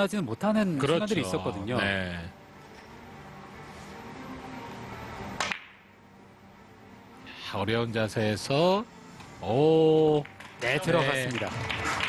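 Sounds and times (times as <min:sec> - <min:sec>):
cue striking ball click: 0:05.4 - 0:05.8.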